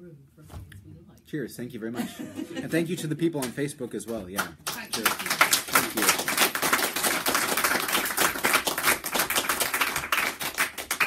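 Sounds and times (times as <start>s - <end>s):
audience applauding: 4.1s - 11.0s.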